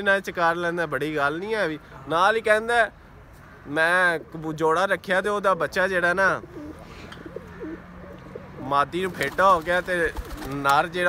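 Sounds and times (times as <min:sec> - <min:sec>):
pigeon cooing: 0:06.3 - 0:08.7.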